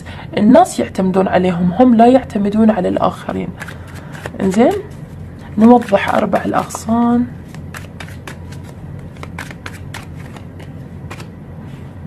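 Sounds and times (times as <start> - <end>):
low steady hum: 0.0 - 12.0
cards being shuffled: 3.3 - 11.4.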